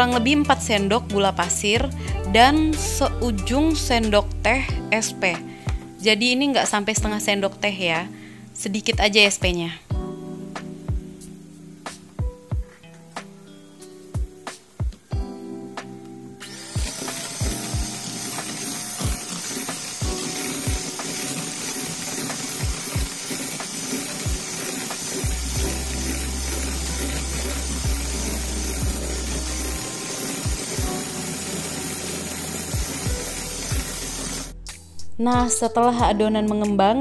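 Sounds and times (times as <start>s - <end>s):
background music: 0.0s - 37.0s
electric hand mixer whipping: 16.4s - 34.6s.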